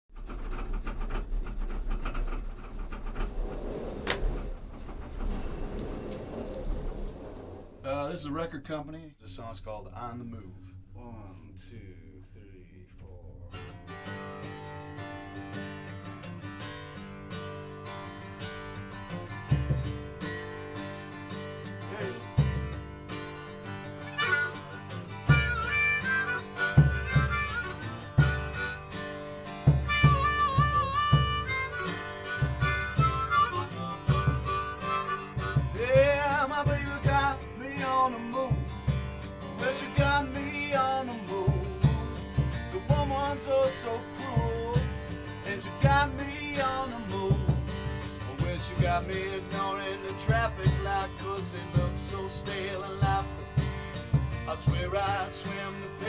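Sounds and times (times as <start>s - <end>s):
clacks and rattles: 0.1s - 7.9s
gondola cabin low rumble: 0.1s - 13.7s, 35.7s - 47.5s
acoustic guitar strumming chords: 13.5s - 56.0s
blues harmonica: 23.6s - 55.8s.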